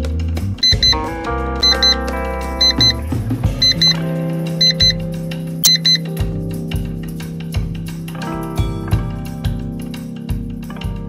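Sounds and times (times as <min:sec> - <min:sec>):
background music: 0:00.0 - 0:11.0
high double beep: 0:00.6 - 0:01.0, 0:01.6 - 0:02.0, 0:02.6 - 0:03.0, 0:03.6 - 0:04.0, 0:04.6 - 0:05.0, 0:05.6 - 0:06.1.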